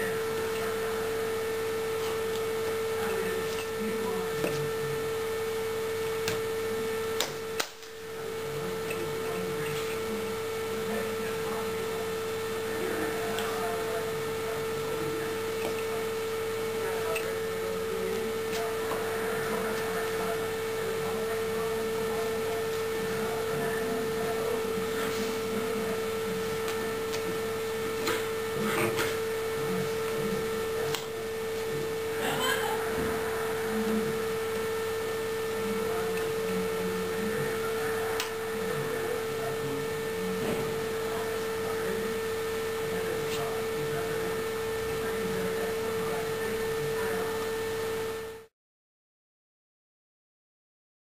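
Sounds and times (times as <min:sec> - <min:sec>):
steady electrical hum: 0:00.0 - 0:48.5.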